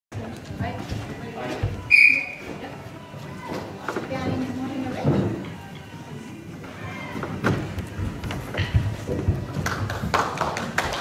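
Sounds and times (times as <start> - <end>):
scattered voices in a hall: 0.1 - 11.0
short whistle blast: 1.9 - 2.4.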